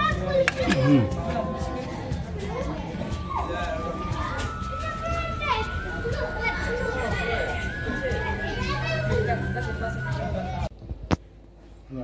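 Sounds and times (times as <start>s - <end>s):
children chattering: 0.0s - 10.7s
steady high tone: 0.8s - 10.7s.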